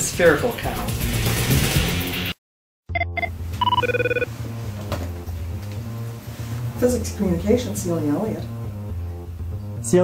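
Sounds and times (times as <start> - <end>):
background music: 0.0 - 10.0
electronic telephone ringing: 2.9 - 4.3.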